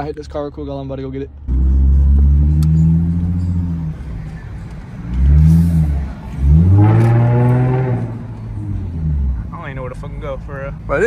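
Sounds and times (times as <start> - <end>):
car engine revving: 1.4 - 11.0.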